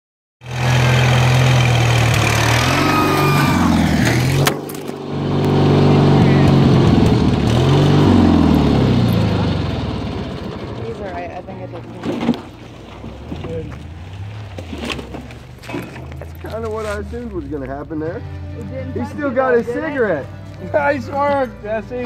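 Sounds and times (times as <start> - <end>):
lawnmower engine revving: 0.4 - 16.6.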